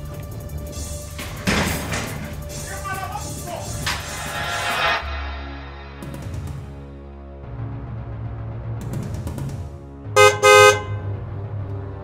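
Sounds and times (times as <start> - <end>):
background music: 0.0 - 12.0
car horn toots: 10.2 - 11.1.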